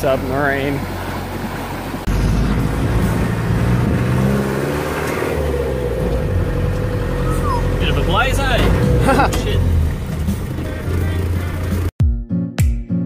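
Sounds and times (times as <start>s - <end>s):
road noise: 0.0s - 11.9s
vehicle engine running: 0.0s - 11.9s.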